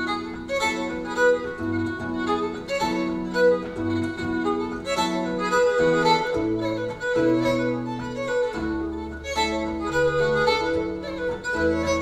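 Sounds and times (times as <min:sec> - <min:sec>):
bowed fiddle melody: 0:00.0 - 0:12.0.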